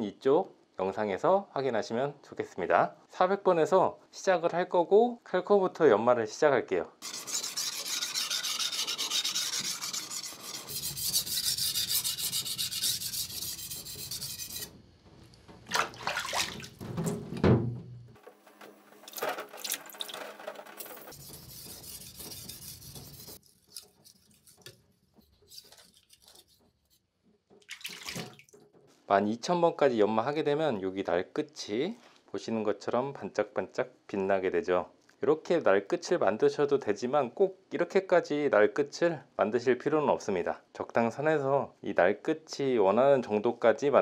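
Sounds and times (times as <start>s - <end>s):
knife rasping on whetstone: 7.0s - 14.7s, 21.0s - 27.0s
water splashing: 15.6s - 17.0s, 19.0s - 20.4s, 27.6s - 28.6s.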